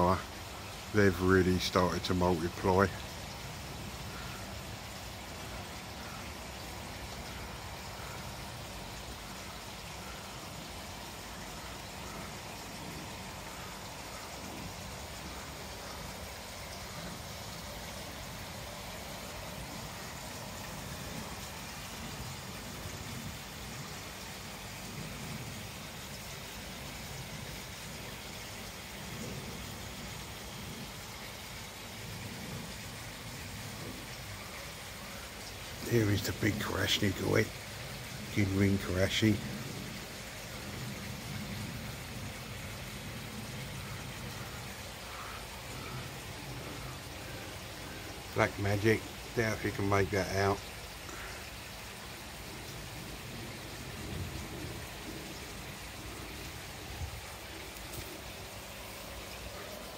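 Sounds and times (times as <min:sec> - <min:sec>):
water splashing into pond: 0:00.0 - 0:59.9.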